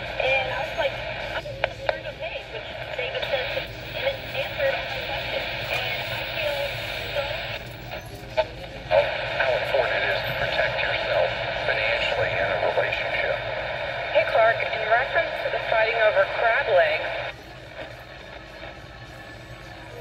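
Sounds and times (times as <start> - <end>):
radio voice from small speaker: 0.0 - 7.6, 8.4 - 18.8.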